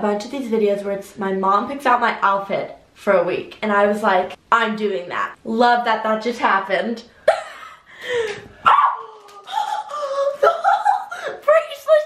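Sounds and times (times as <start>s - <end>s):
girl laughing: 7.3s - 8.4s, 9.0s - 11.5s.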